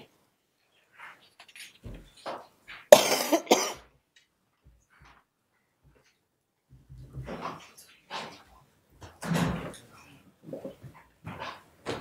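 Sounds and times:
person coughing: 0:02.9 - 0:03.9.

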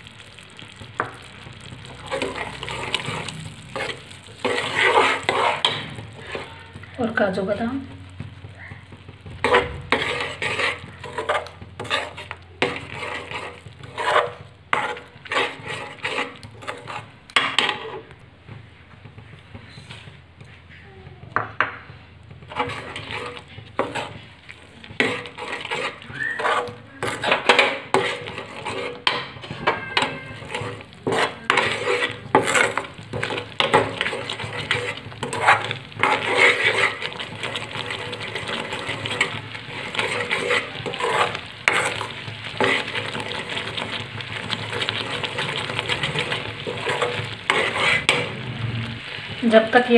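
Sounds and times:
bubbling mixture: 0:00.0 - 0:49.9
spoon scraping metal pan: 0:00.6 - 0:18.2, 0:22.3 - 0:49.9.

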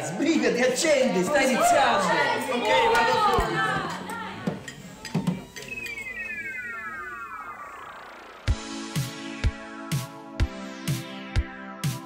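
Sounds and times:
falling electronic tone sweep: 0:05.3 - 0:10.0.

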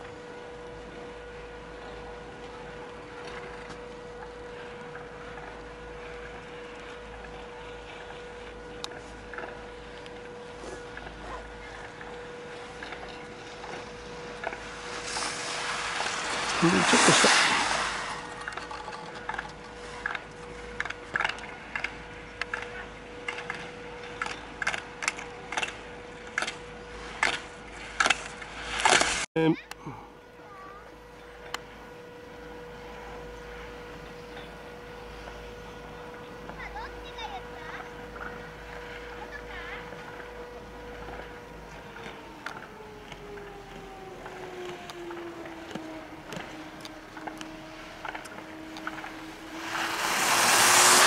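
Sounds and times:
skis hissing on snow: 0:14.6 - 0:18.4, 0:49.5 - 0:51.0.

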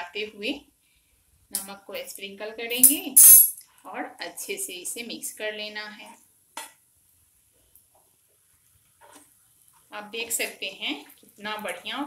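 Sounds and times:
spatula stirring in frying pan: 0:07.5 - 0:12.0.

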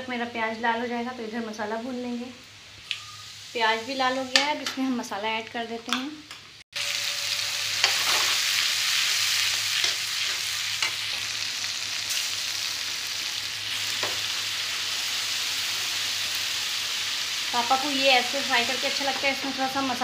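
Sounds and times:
hot oil sizzling: 0:01.2 - 0:05.1, 0:06.7 - 0:20.0.

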